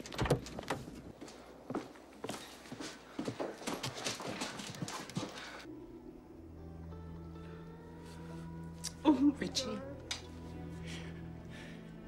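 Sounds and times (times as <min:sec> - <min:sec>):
low sustained music: 0:05.6 - 0:12.0.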